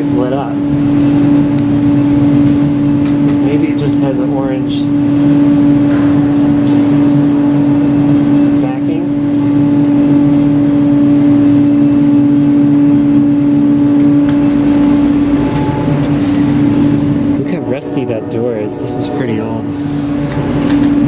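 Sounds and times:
loud steady machine hum: 0.0 - 21.0.

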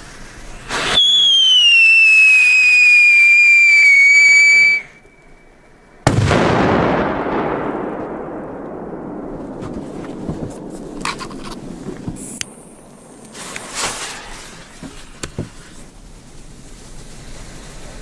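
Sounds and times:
firework whistle sliding down: 0.5 - 5.4
firecracker bang: 0.6 - 4.8, 6.0 - 15.9.

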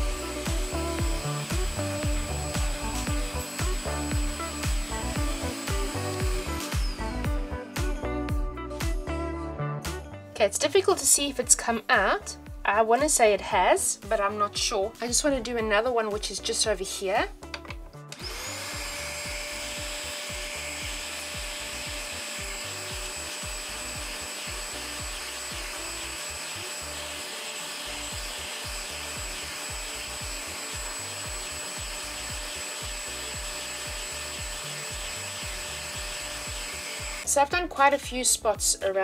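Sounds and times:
spot cleaner motor whine: 0.0 - 7.5, 18.1 - 37.3.

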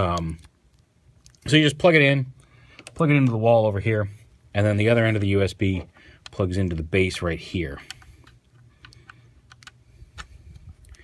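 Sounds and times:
plastic parts clicking and scraping: 2.7 - 3.4, 5.1 - 11.0.

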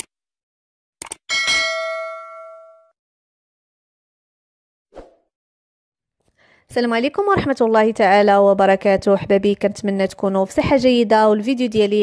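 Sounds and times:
bell ding: 1.3 - 3.0.

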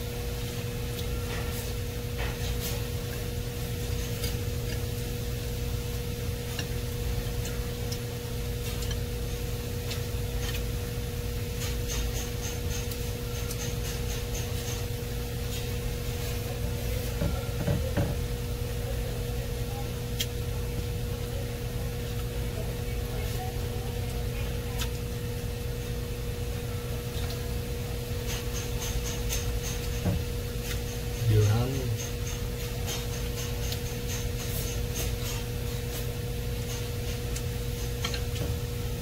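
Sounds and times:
person chewing: 0.0 - 16.5, 27.0 - 38.4
low electrical hum: 0.0 - 39.0.

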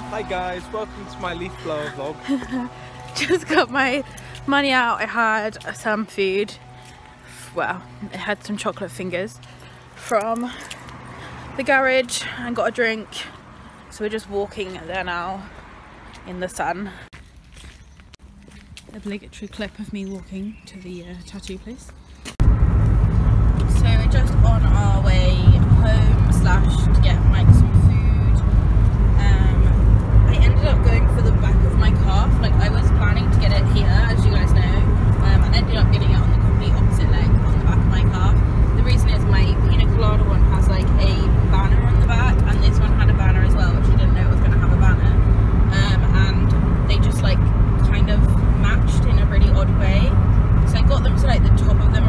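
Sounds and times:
car cabin engine and road noise: 0.0 - 4.0, 22.4 - 52.0
people talking: 0.0 - 6.7, 7.4 - 9.4, 10.0 - 10.7, 11.6 - 13.3, 13.9 - 15.5, 16.3 - 17.0, 18.9 - 21.9, 23.6 - 28.5, 29.1 - 52.0.

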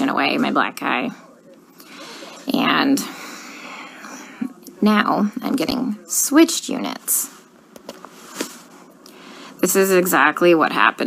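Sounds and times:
woman speaking: 0.0 - 1.2, 2.4 - 3.2, 4.1 - 7.4, 9.6 - 11.0.

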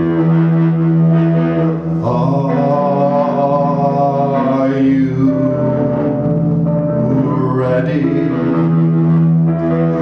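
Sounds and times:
electric guitar: 0.0 - 10.0.

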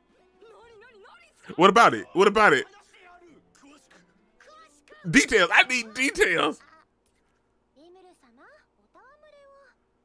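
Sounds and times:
faint high-pitched woman speaking: 7.8 - 9.8.

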